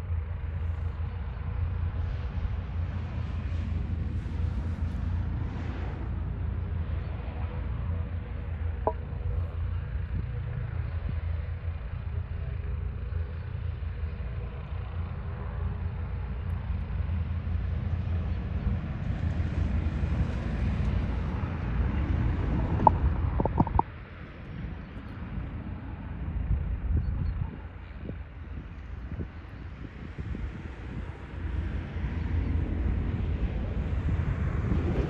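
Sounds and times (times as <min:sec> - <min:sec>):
distant jet engines rumbling: 0:00.0 - 0:35.0
wind buffeting microphone: 0:17.3 - 0:35.0.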